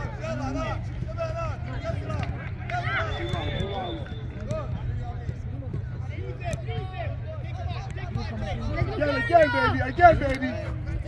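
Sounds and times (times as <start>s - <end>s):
players and spectators shouting: 0.0s - 11.0s.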